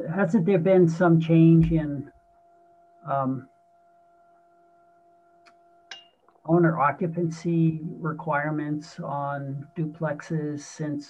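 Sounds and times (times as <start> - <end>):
faint electrical hum: 0.0 - 11.0.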